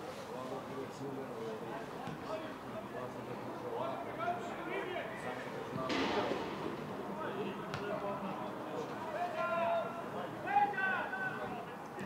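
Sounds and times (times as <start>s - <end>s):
ball being kicked: 7.7s - 7.9s.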